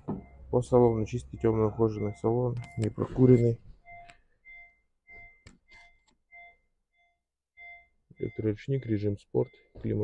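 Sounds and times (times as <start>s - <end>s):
electronic warning chime beeping: 0.2s - 10.0s.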